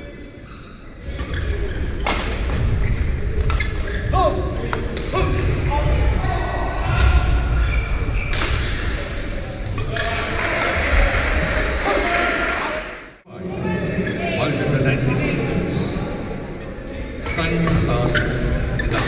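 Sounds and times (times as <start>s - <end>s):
shoe squeaks: 2.8s - 4.2s, 7.6s - 8.5s.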